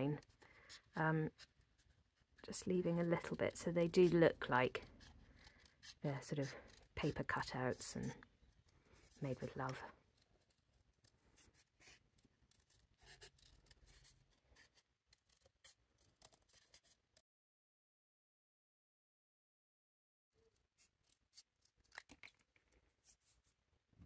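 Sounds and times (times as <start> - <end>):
scissors snipping paper: 0.2 - 17.2, 20.5 - 23.6.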